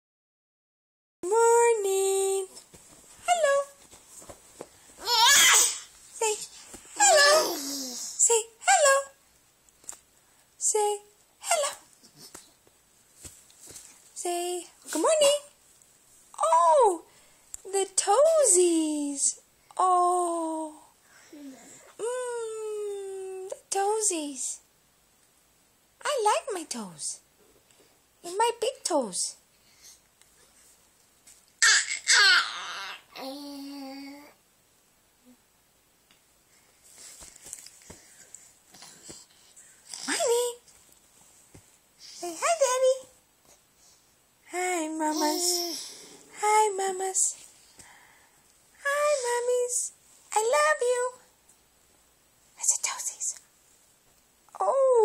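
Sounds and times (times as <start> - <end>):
baby cooing: 5.0 - 5.9, 7.0 - 8.2, 31.6 - 34.3, 45.0 - 45.9
baby squealing: 5.0 - 5.9, 31.6 - 33.0.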